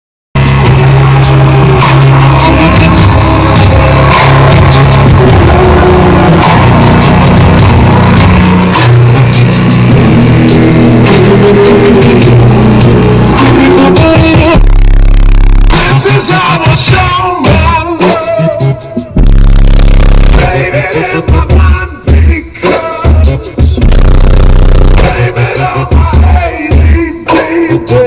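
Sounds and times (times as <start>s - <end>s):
loud bass-heavy song in car: 0.4s - 28.0s.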